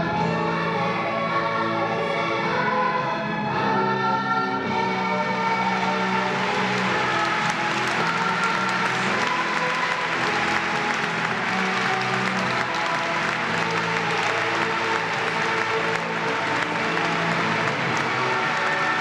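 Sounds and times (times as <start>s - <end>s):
audience applauding: 5.6s - 19.0s.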